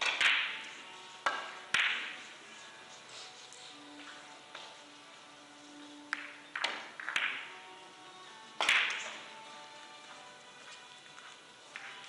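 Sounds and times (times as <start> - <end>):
billiard balls clacking: 0.0 - 2.2, 6.1 - 7.5, 8.6 - 9.3
faint background music: 0.0 - 12.0.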